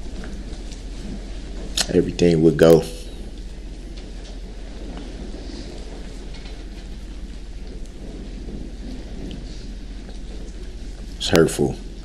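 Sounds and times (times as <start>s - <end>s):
microphone hum and hiss: 0.0s - 12.0s.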